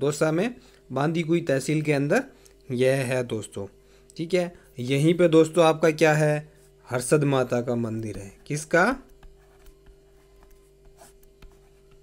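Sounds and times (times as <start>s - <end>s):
handwriting on a touchscreen: 8.0s - 12.0s.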